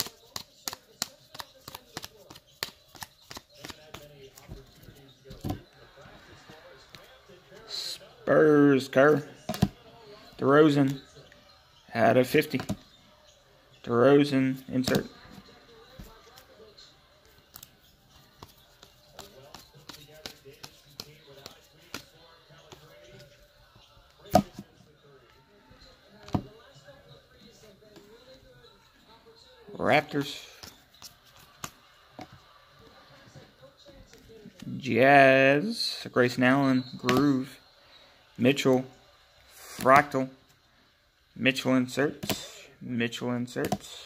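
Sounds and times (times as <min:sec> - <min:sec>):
cards clicking and snapping: 0:00.0 - 0:04.5.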